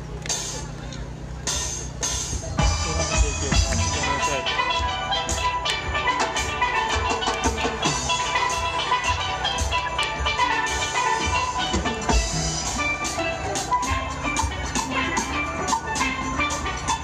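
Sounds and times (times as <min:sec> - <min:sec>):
percussion steady beat: 0:00.0 - 0:17.0
steel pans playing melody: 0:00.0 - 0:17.0.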